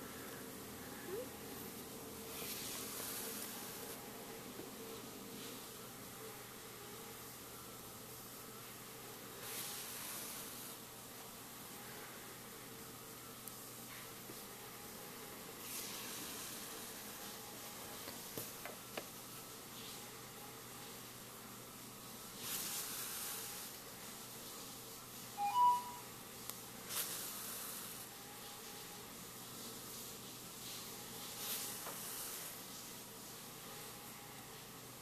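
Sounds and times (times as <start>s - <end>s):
steady low hiss: 0.0s - 35.0s
two-note blip: 25.4s - 26.1s.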